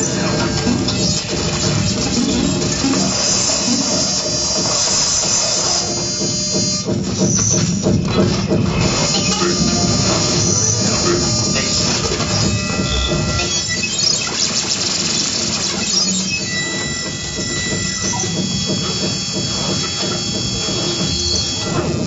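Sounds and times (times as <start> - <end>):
high squealing tones: 0.0 - 22.0
noisy grinding electronics: 0.0 - 22.0.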